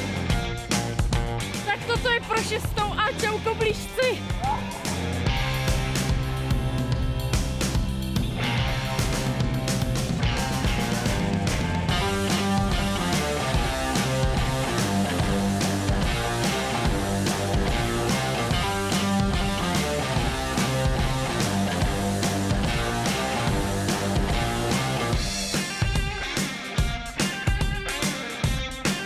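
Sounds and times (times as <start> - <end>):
rock music with guitar: 0.0 - 29.0.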